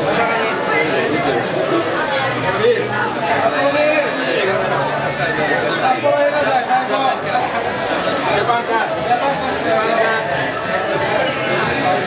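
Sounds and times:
men chatting: 0.0 - 12.0.

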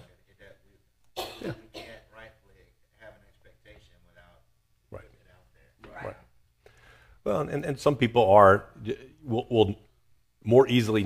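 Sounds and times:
person coughing: 1.2 - 2.1.

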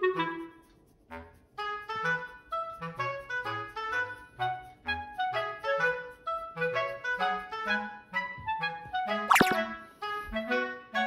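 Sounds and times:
bouncy clarinet-like background music: 0.0 - 11.0
boing sound effect: 9.3 - 9.6.

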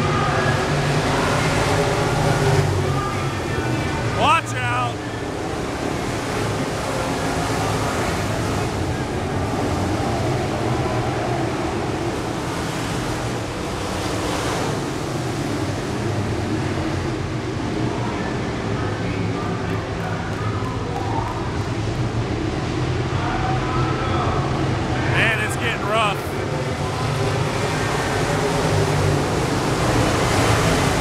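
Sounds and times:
race car engines roaring: 0.0 - 31.0.

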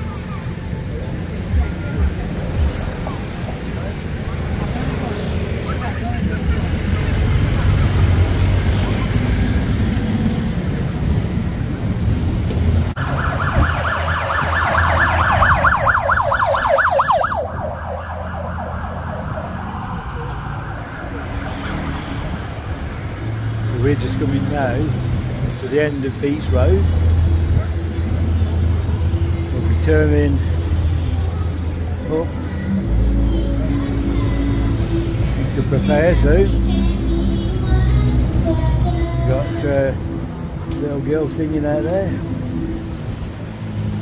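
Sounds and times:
engine and road noise: 0.0 - 44.0
warbling siren-like tone: 13.0 - 21.1.

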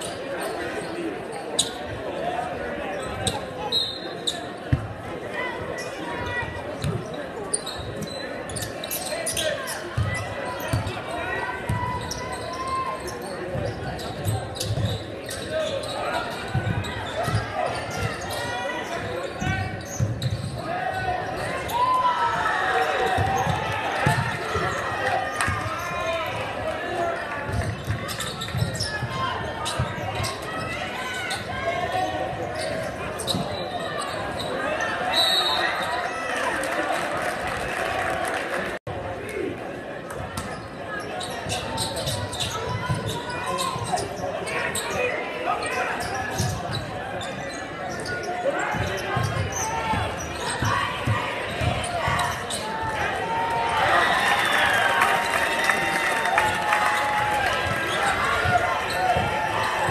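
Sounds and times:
crowd chatter and shouts: 0.0 - 59.9.

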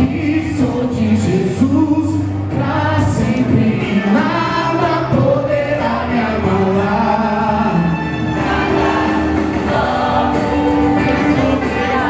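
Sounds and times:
bass line: 0.0 - 12.0
gospel singing with band: 0.0 - 12.0.

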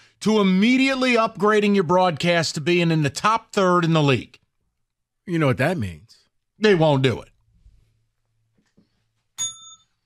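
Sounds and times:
bell-like ding: 9.4 - 10.0.

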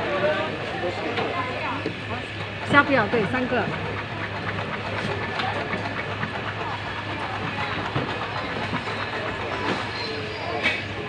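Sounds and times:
faint chatter: 0.0 - 11.0.

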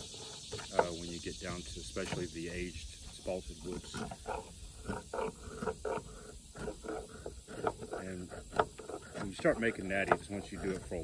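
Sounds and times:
knife scraping bark and wood: 0.0 - 11.0.

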